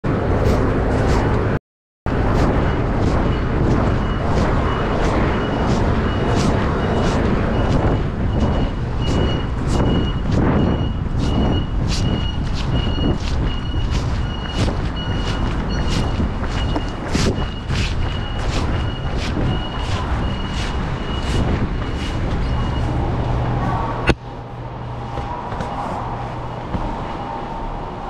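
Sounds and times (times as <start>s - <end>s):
street traffic rumble: 0.0s - 28.0s
jacket fabric rubbing on microphone: 0.3s - 22.9s
footsteps: 0.3s - 24.2s, 25.0s - 27.2s
high electronic beep: 2.6s - 23.0s.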